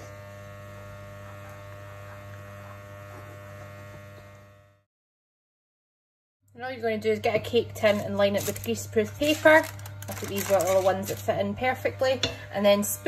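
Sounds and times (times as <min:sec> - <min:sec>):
electrical hum: 0:00.0 - 0:04.8, 0:06.5 - 0:13.0.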